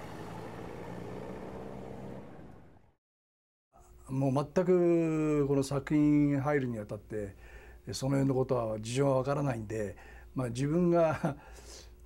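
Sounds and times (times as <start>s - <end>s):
vehicle engine humming: 0.0s - 3.0s.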